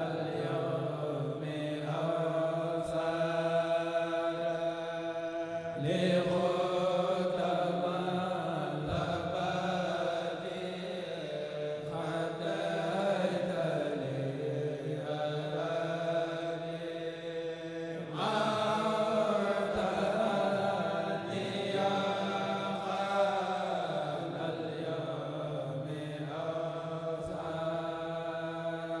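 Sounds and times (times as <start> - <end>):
men chanting in unison: 0.0 - 29.0.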